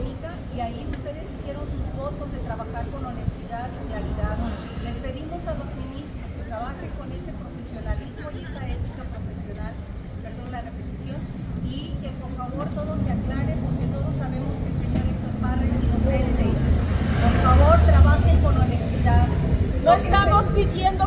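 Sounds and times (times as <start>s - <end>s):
quiet talking: 0.0s - 21.0s.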